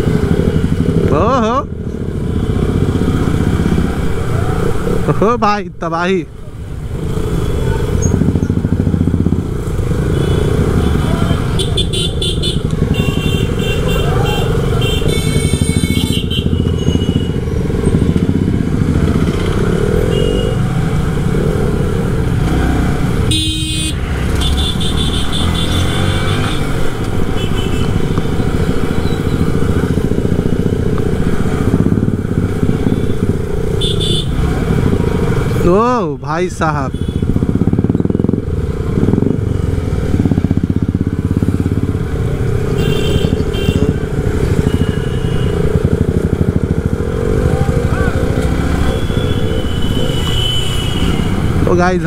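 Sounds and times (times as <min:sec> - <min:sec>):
motorcycle engine rumbling: 0:00.0 - 0:52.0
horn honks: 0:10.1 - 0:17.4, 0:20.1 - 0:20.7, 0:23.3 - 0:26.8, 0:33.8 - 0:34.5, 0:36.9 - 0:37.3, 0:42.7 - 0:45.7, 0:48.3 - 0:51.6.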